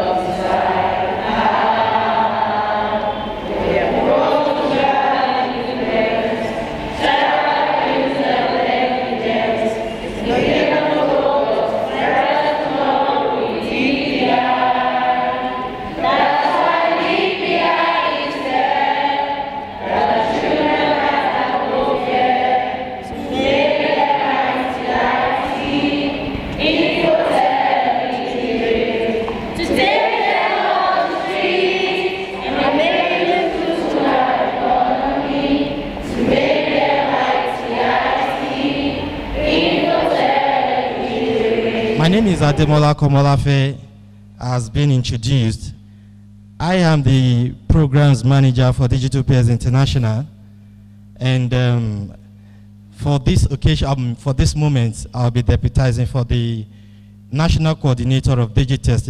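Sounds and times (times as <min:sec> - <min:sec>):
children singing in chorus: 0:00.0 - 0:42.2.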